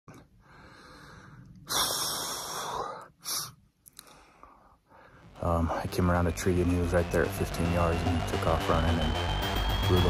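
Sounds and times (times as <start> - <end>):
man breathing hard: 0.4 - 5.3.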